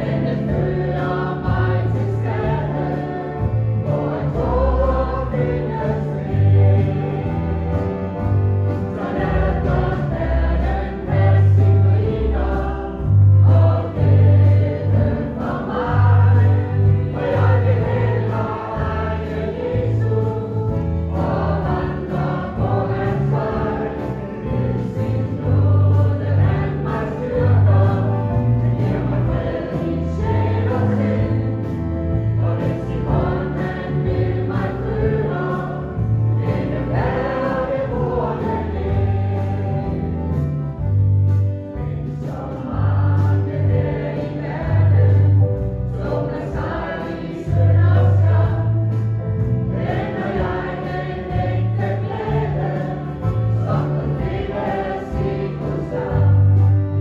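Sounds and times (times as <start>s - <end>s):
choir singing a hymn: 0.0s - 41.1s, 41.7s - 57.0s
instrumental accompaniment: 0.0s - 57.0s.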